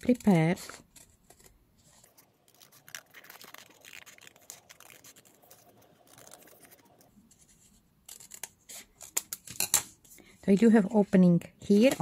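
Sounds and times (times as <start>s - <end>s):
scissors snipping paper: 0.0s - 7.1s, 8.1s - 9.2s.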